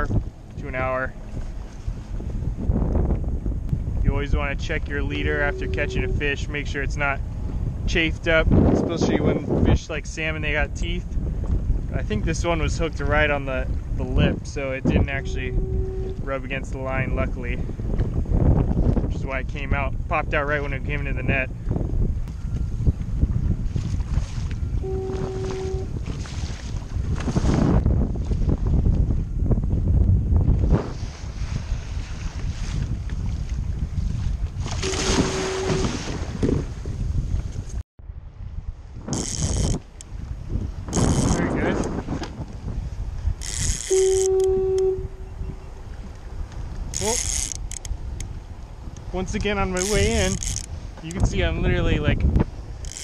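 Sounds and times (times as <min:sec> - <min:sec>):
wind buffeting microphone: 0:00.0 - 0:53.0
short steady tone: 0:05.0 - 0:06.6, 0:14.9 - 0:16.6, 0:24.7 - 0:26.0, 0:34.8 - 0:36.0, 0:43.8 - 0:45.7
waves splashing against kayak hull: 0:23.6 - 0:28.7, 0:30.5 - 0:37.5, 0:45.9 - 0:51.6.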